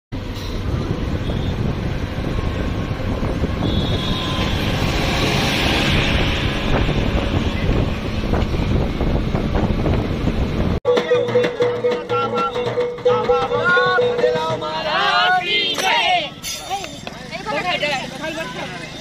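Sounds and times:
road and engine rumble: 0.1 - 19.0
wind buffeting microphone: 0.2 - 10.8.

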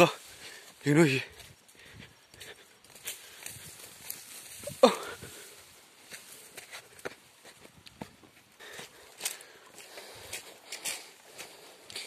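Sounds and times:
steps rustling through dry grass: 0.0 - 12.0.

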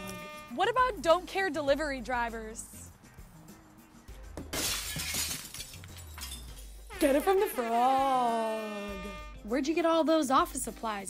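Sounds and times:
glass shattering: 4.5 - 7.4
tinkling glass shards: 4.6 - 7.6.

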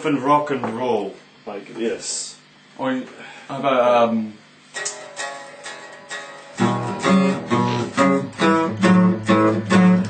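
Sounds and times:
electric guitar: 4.8 - 10.0.

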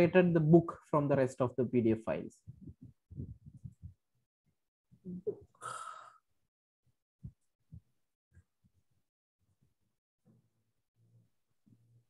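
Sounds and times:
faint low thumps: 2.4 - 4.0.

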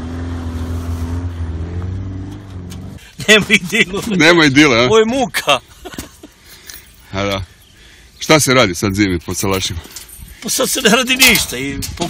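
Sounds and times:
car engine at high revs: 0.0 - 3.0.

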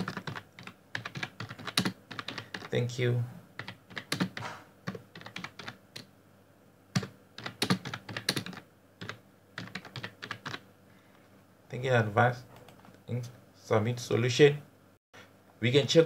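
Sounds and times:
typing on computer keyboard: 0.0 - 2.7, 3.6 - 6.1, 7.0 - 10.6.

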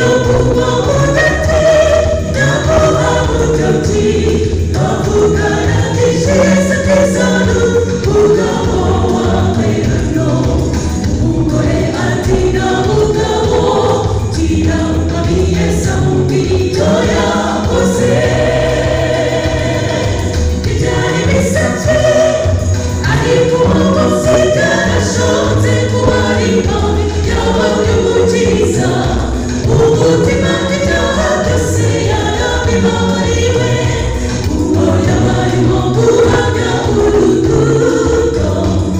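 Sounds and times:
choir singing gospel: 0.0 - 38.9.

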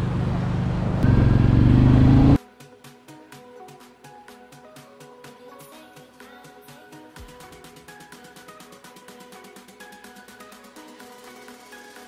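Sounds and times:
motorcycle engine accelerating: 0.0 - 2.4.

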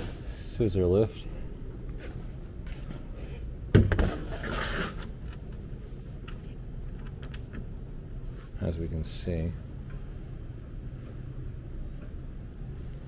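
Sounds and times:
low hum: 4.3 - 13.0.

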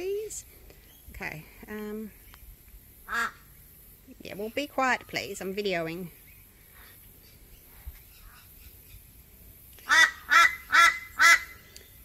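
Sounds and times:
bird nasal calls: 3.0 - 3.5, 6.2 - 9.1, 9.8 - 12.0.

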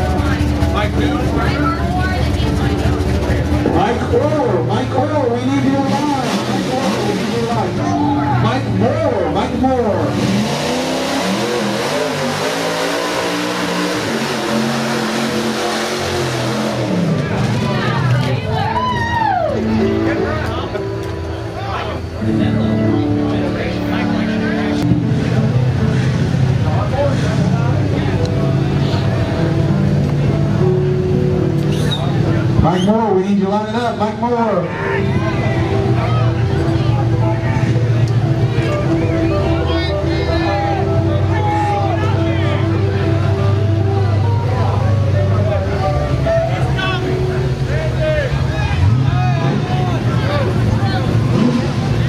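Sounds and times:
truck engine revving: 0.0 - 18.6, 19.6 - 52.0.

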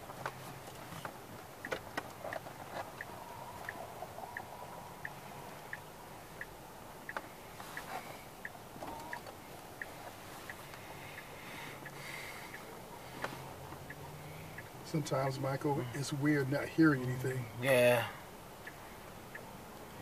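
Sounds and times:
turn signal ticking: 0.0 - 20.0.

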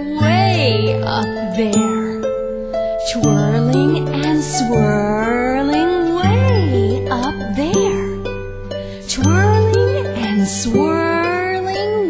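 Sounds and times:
steady low accompaniment: 0.0 - 12.0.

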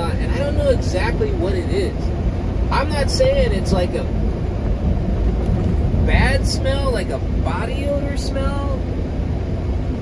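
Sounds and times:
truck engine and road rumble: 0.0 - 10.0.

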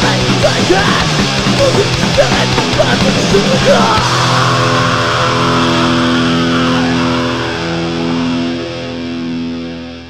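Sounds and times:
bass guitar: 0.0 - 10.0
distorted electric guitar chord: 0.0 - 10.0.

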